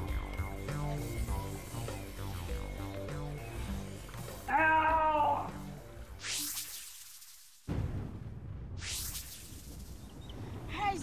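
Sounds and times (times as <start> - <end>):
music: 0.0 - 6.2
whoosh sound effects: 8.7 - 10.1.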